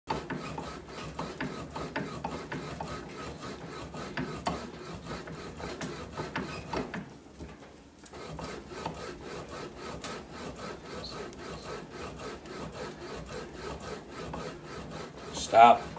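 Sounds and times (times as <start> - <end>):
bat rolling machine rasping: 0.1 - 7.2, 8.1 - 15.9.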